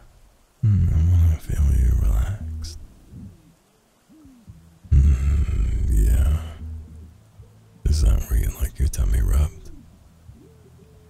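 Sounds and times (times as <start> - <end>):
man humming low: 0.0 - 3.4, 4.1 - 7.2, 7.8 - 9.8.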